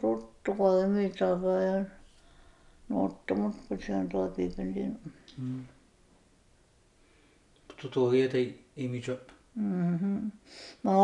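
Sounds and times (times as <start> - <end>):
elderly woman speaking: 0.0 - 2.0, 2.9 - 5.2, 9.6 - 11.0
woman breathing: 2.1 - 2.9, 10.4 - 10.9
woman humming: 9.6 - 11.0.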